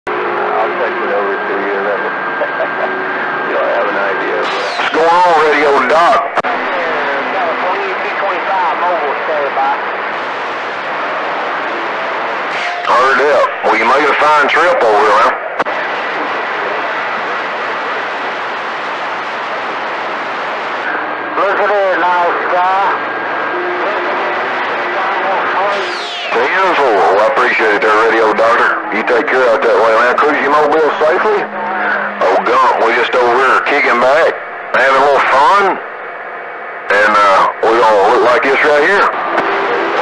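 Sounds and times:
garbled radio voice: 0.1s - 9.9s, 12.8s - 17.4s, 20.8s - 35.8s, 36.9s - 40.0s
static hiss: 7.6s - 36.0s, 36.9s - 40.0s.

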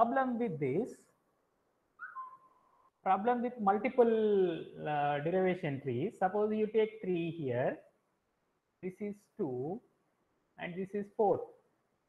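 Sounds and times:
whistle-like tone: 2.0s - 2.9s.

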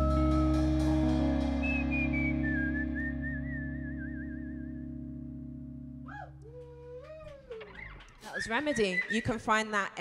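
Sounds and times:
person whistling a slow melody: 0.0s - 4.9s
band holding a chord: 0.0s - 6.0s.

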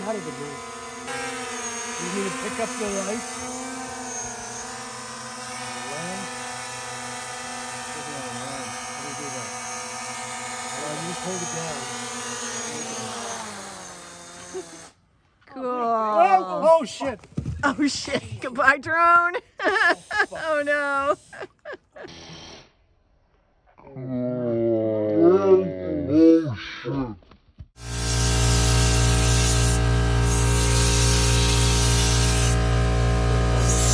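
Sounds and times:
drone propellers whining: 0.0s - 14.9s.

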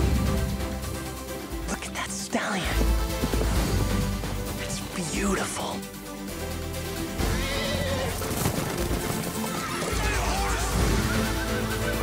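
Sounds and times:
film score music: 0.0s - 12.0s
horses galloping: 2.6s - 4.6s, 7.2s - 11.8s
horse whinnying: 7.2s - 11.5s.

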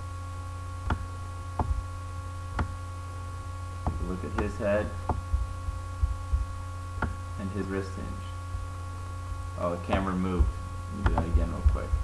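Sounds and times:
soft low thumps: 0.0s - 7.4s, 8.2s - 12.0s
electrical hum with whine: 0.0s - 12.0s.

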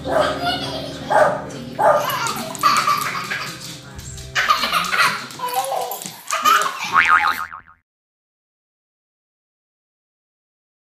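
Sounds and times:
cartoon boing spring effect: 6.9s - 7.8s.

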